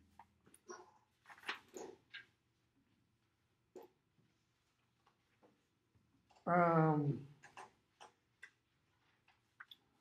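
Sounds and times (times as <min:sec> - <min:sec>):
person saying um: 0:06.4 - 0:07.3.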